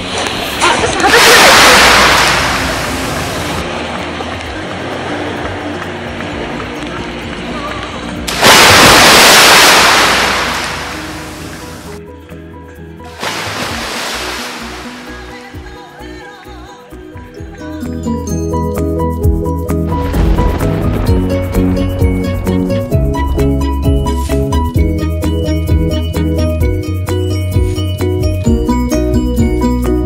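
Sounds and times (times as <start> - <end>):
sea waves on rocky shore: 0.0 - 3.7, 8.3 - 12.0, 13.1 - 15.7
background music: 10.2 - 30.0.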